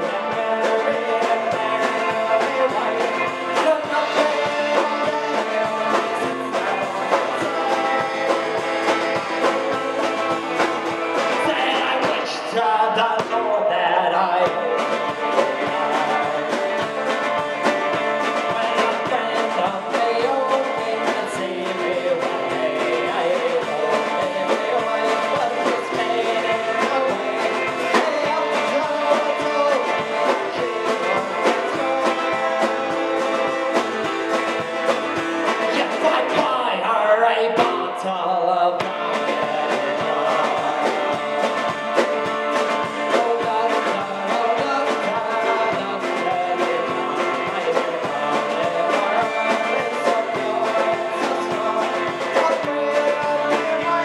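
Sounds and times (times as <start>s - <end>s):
electric guitar: 0.0s - 54.0s
man singing: 0.0s - 54.0s.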